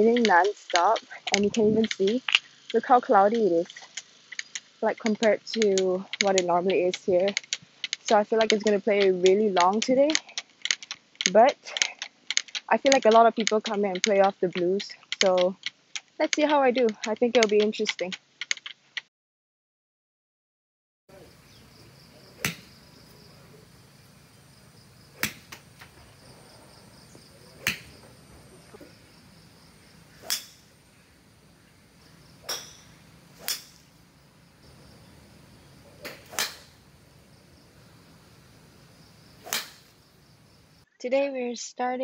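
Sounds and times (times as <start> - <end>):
golf club hitting ball: 21.1 - 40.8.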